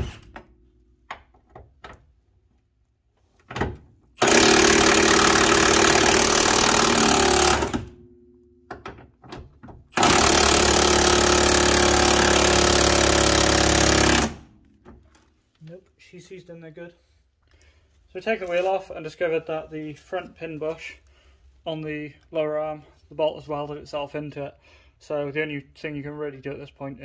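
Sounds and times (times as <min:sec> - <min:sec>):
impact wrench hammering: 0:04.2 - 0:09.0, 0:09.9 - 0:14.5.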